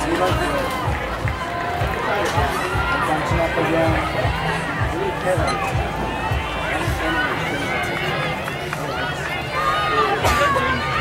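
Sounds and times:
crowd talking and calling out: 0.0s - 11.0s.

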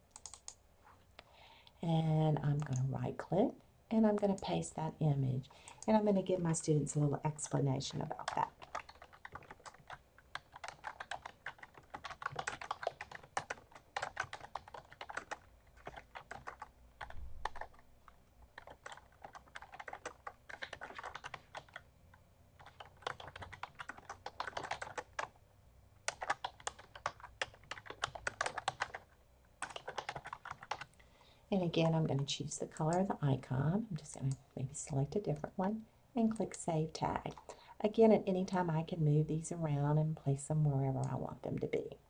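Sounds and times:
typing on computer keyboard: 0.1s - 0.6s, 8.2s - 17.8s, 18.6s - 21.8s, 22.6s - 25.4s, 26.1s - 30.9s.

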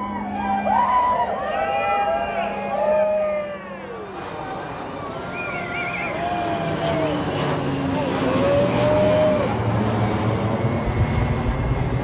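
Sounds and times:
crowd voices and whoops: 0.0s - 9.7s
fighter jets flying overhead: 0.0s - 12.0s.

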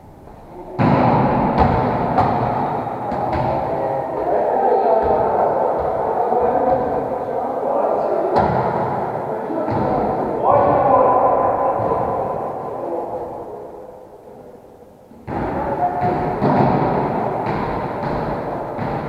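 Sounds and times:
gym hall din: 0.0s - 19.0s
volleyball being struck: 0.8s - 3.7s, 15.3s - 19.0s.

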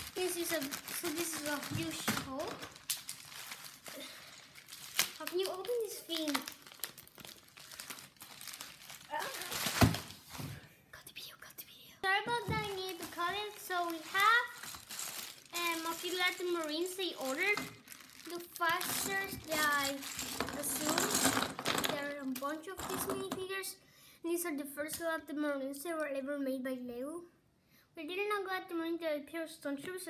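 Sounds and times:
plastic figures clattering: 0.0s - 2.9s, 12.3s - 23.4s
plastic mailer bag crinkling: 0.0s - 10.6s, 12.3s - 22.9s.

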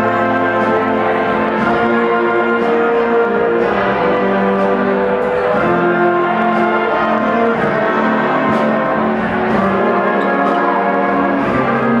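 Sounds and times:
jazz big band playing: 0.0s - 12.0s.

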